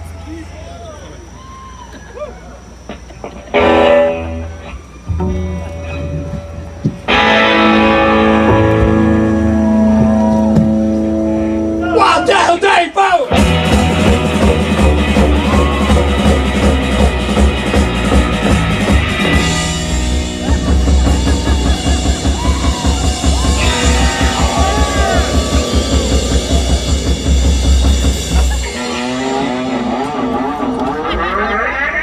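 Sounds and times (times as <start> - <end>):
drums: 0.0 - 32.0
electric guitar chords: 3.3 - 12.0, 13.3 - 32.0
live rock band playing: 3.4 - 12.0, 13.2 - 32.0
keyboard chords: 5.1 - 12.0.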